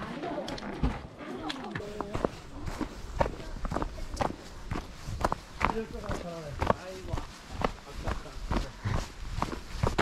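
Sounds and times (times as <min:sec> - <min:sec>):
footsteps on leafy dirt trail: 0:00.0 - 0:10.0.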